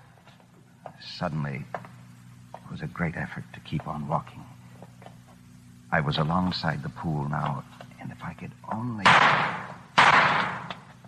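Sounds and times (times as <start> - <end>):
gunshots: 9.0 - 10.8.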